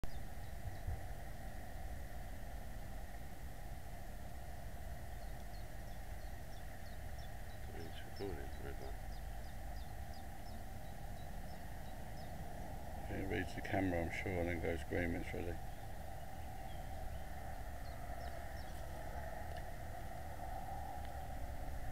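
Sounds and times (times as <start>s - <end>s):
steady hiss: 0.1s - 21.9s
thin high hum: 0.1s - 21.9s
small bird chirps: 5.1s - 14.2s, 15.0s - 19.3s
distant voice: 7.6s - 9.0s, 13.0s - 15.7s.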